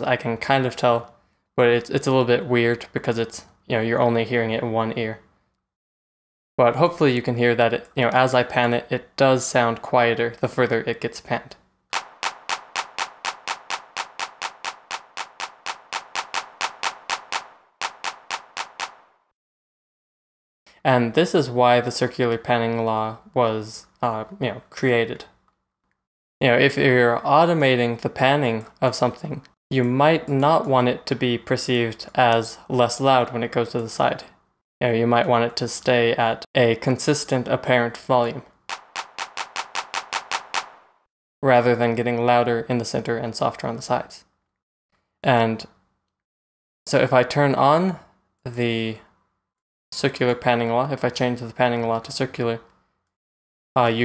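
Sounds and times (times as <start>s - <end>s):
electronic hand clap loop: 12.0s - 19.3s, 38.7s - 41.1s.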